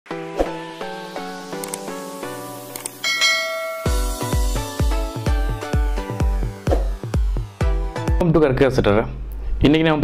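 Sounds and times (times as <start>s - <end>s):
background music: 0.1s - 9.3s
short clicks: 1.6s - 1.8s
bell chime: 3.0s - 4.6s.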